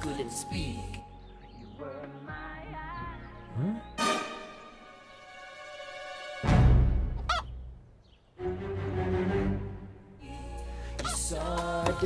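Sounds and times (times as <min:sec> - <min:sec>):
music: 0:00.0 - 0:07.8, 0:08.4 - 0:12.0
rooster squawk: 0:07.2 - 0:07.5.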